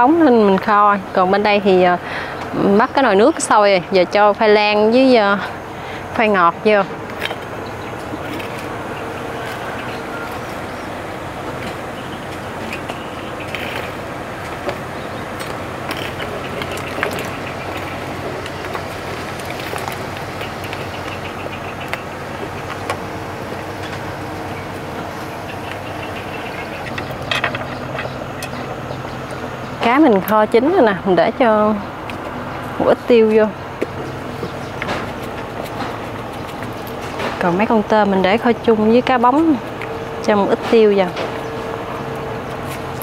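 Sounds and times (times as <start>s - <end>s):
water boiling: 6.1s - 40.4s.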